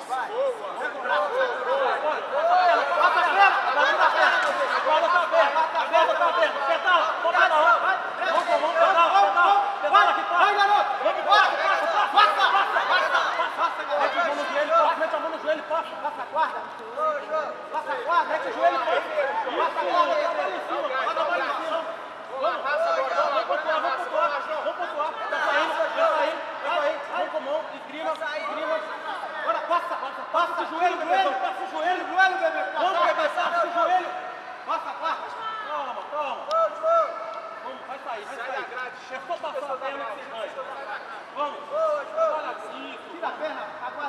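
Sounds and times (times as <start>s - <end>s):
crowd chatter: 0.0s - 44.0s
men talking and shouting: 0.0s - 44.0s.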